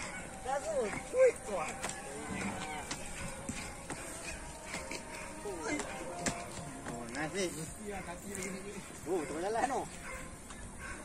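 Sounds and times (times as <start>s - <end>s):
faint voices: 0.0s - 11.0s
outdoor background noise: 0.0s - 11.0s.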